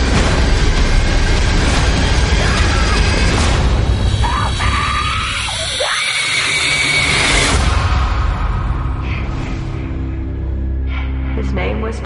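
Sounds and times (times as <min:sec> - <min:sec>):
low film score rumble: 0:00.0 - 0:12.0
woman screaming: 0:04.2 - 0:07.4.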